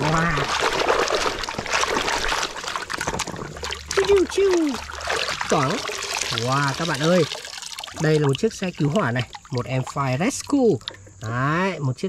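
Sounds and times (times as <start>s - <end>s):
hands scrubbing toys in water: 0.0s - 11.4s
water splashing and trickling: 0.0s - 12.0s.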